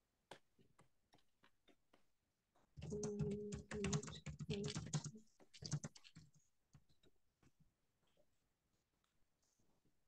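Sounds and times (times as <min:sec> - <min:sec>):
typing on computer keyboard: 0:02.8 - 0:06.4.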